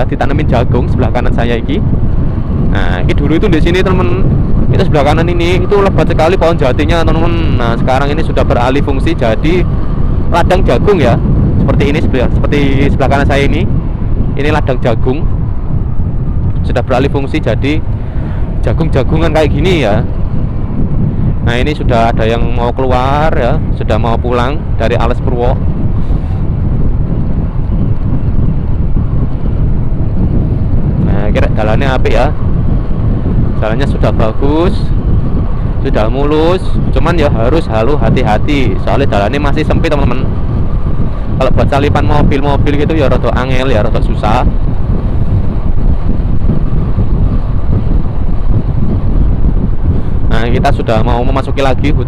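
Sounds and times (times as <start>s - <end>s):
road noise: 0.0s - 52.0s
wind buffeting microphone: 0.0s - 52.0s
motorcycle engine: 3.9s - 11.7s.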